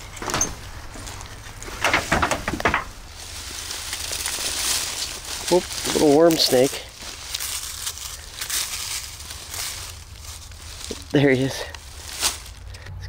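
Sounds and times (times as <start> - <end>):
dry grass and leaves rustling: 0.0 - 13.0
sharp crackles: 0.4 - 12.8.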